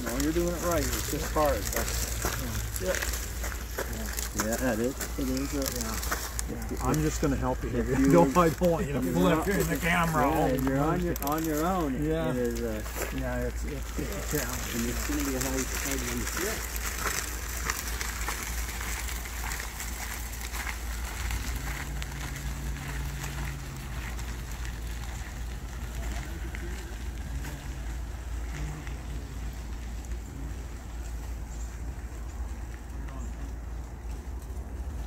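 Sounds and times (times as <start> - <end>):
footsteps crunching on gravel: 0.0 - 35.0
wheels crunching on gravel: 0.0 - 35.0.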